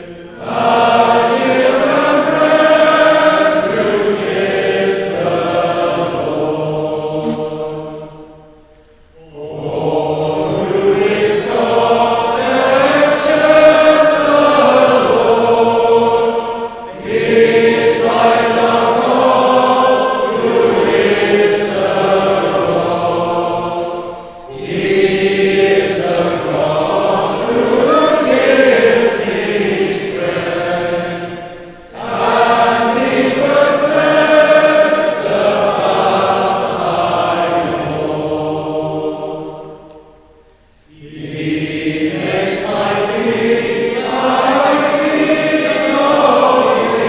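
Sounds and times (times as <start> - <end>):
congregation singing: 0.0 - 47.0.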